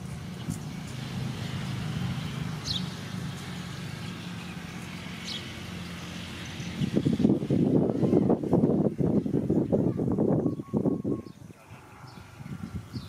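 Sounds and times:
low engine hum: 0:00.0 - 0:13.0.

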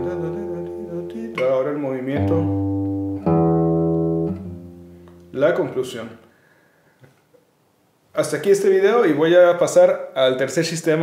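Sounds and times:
classical guitar bass notes plucked: 0:00.0 - 0:05.6.

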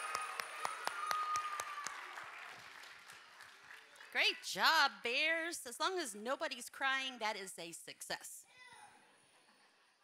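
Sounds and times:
audience applauding: 0:00.0 - 0:04.3.

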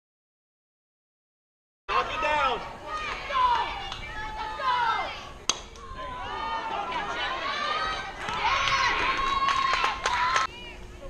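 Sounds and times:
girls shouting and cheering: 0:01.9 - 0:11.0.

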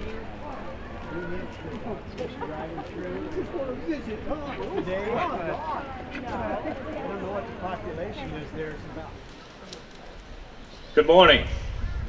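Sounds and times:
crowd chatter: 0:00.0 - 0:12.0.

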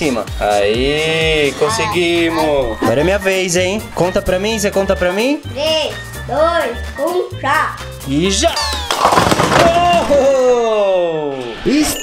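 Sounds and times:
plastic toys clattering onto tile floor: 0:08.6 - 0:10.5.

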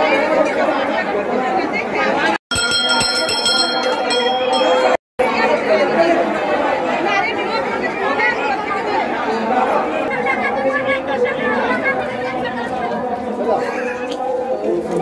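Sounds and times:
crowd talking hubbub: 0:00.0 - 0:15.0.

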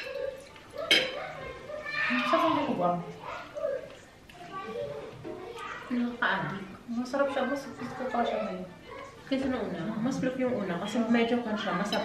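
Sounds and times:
low talk at a table: 0:00.0 - 0:12.0
tableware clink: 0:00.8 - 0:01.2.

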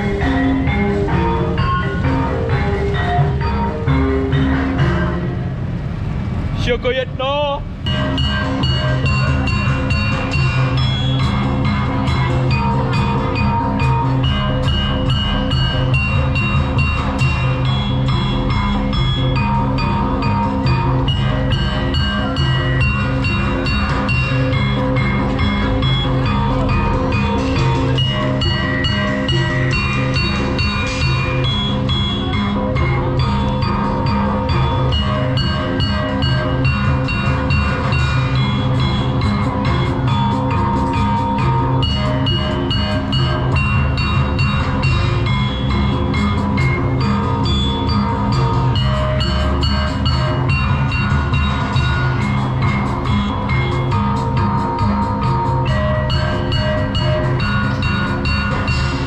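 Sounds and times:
gamelan metallophones: 0:00.0 - 0:05.6, 0:07.7 - 0:59.0
drums: 0:00.0 - 0:06.6, 0:07.7 - 0:59.0.

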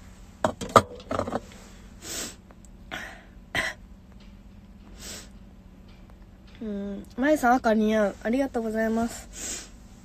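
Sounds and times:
faint low hum inside a car: 0:00.0 - 0:10.0.

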